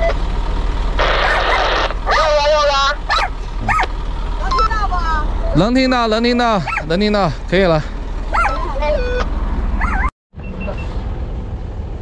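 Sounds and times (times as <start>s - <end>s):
low hum: 0.0s - 12.0s
dog whining: 1.2s - 3.9s, 6.6s - 6.9s, 8.3s - 9.2s, 9.8s - 10.1s.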